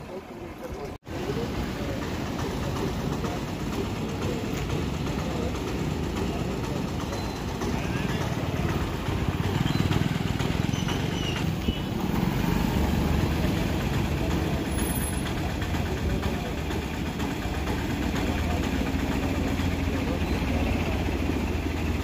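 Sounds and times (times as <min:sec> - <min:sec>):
vehicle engines idling: 0:00.0 - 0:22.0.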